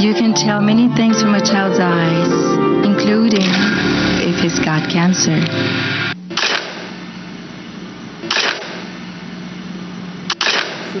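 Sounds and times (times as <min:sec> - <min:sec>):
low hum: 0:00.0 - 0:11.0
camera shutter click: 0:06.3 - 0:06.9, 0:08.3 - 0:08.9, 0:10.3 - 0:10.9.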